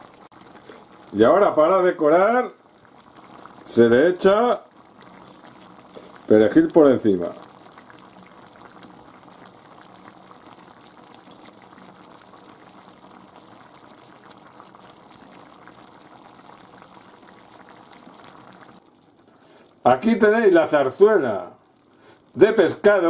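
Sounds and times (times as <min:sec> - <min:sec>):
stew bubbling in a dish: 0:00.0 - 0:23.0.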